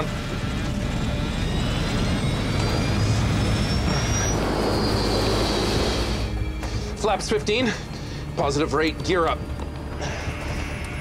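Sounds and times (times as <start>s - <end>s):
jet engines spooling up: 0.0s - 8.6s
dramatic music: 0.0s - 11.0s.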